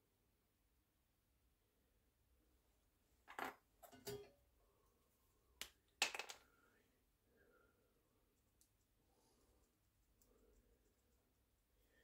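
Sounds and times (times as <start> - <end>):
small objects clicking and knocking: 5.6 - 6.5.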